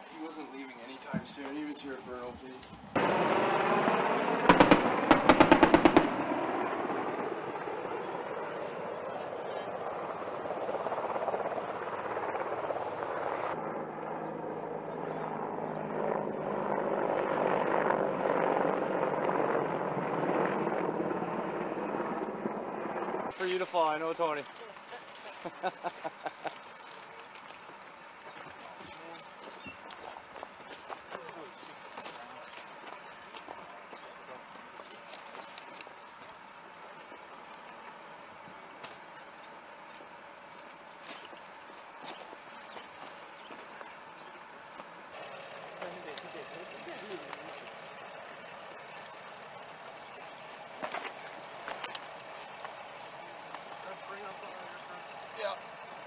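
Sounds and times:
steady outdoor hiss: 0.0s - 17.0s, 21.2s - 56.0s
faint men's voices: 23.4s - 35.3s, 43.5s - 56.0s.

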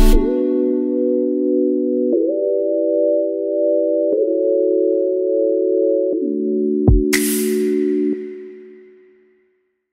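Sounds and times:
soft synthesizer chords: 0.0s - 9.2s.

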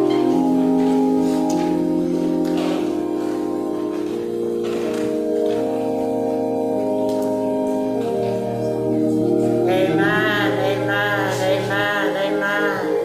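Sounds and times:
organ playing sustained chords: 0.0s - 13.0s.

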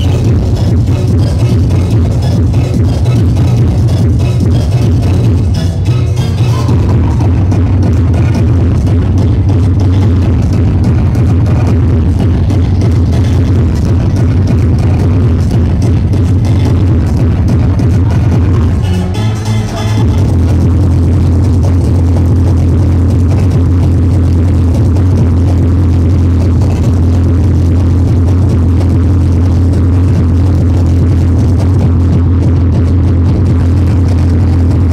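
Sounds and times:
hardcore techno over sound system: 0.0s - 34.9s
heavy bass: 0.0s - 34.9s
fast kick drum: 6.4s - 18.8s, 20.0s - 34.9s.

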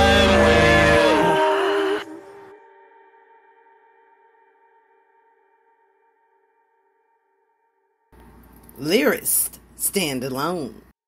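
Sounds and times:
held electronic chord: 0.0s - 2.6s
person speaking: 8.4s - 10.9s.

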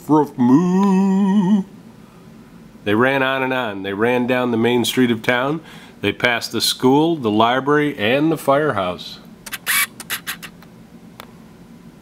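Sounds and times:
short clicks: 9.4s - 11.3s.

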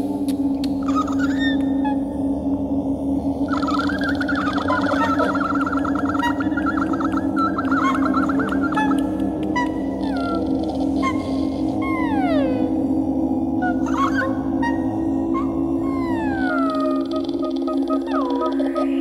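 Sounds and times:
woman's animal-like vocal trills: 13.8s - 19.0s.

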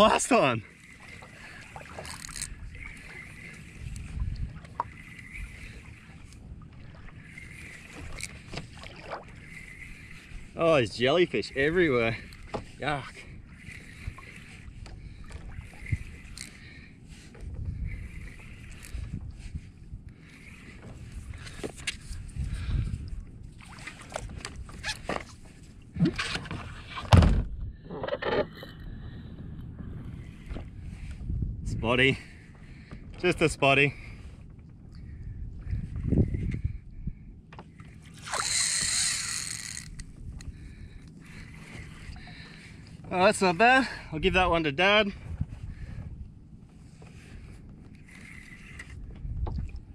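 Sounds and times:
water slapping against kayak hull: 0.0s - 10.7s
rod and hull handling noises: 0.0s - 28.9s, 29.6s - 44.0s, 45.1s - 49.9s
spinning reel winding: 2.0s - 2.5s, 38.3s - 40.0s.

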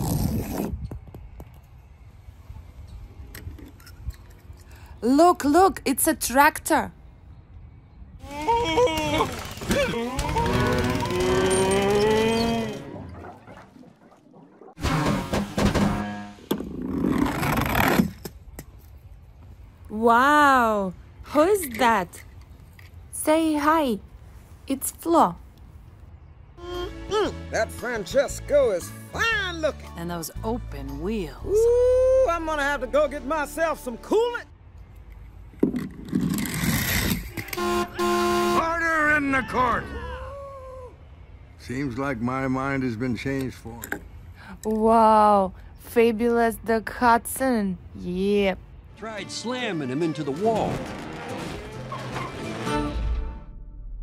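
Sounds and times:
cartoon tractors lowing: 8.2s - 13.2s, 36.9s - 40.3s
soundtrack music: 49.0s - 54.0s
loud sudden sound: 50.4s - 54.0s.

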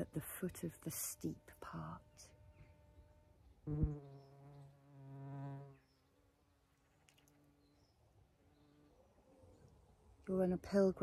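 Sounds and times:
flying insect buzzing: 1.4s - 5.9s
higher-pitched buzz: 3.7s - 5.7s.

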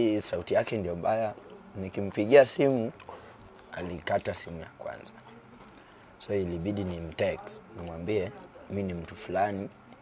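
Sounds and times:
man talking: 0.0s - 5.2s, 6.2s - 9.8s.

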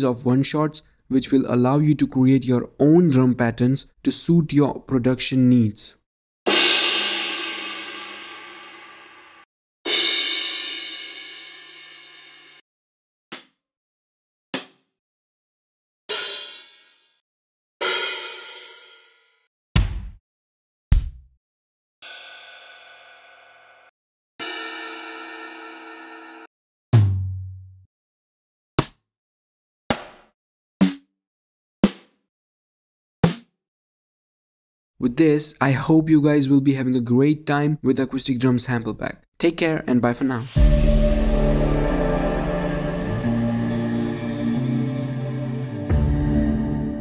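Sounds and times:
crash cymbal ringing: 40.5s - 45.6s
low tom hit: 40.6s - 43.9s.

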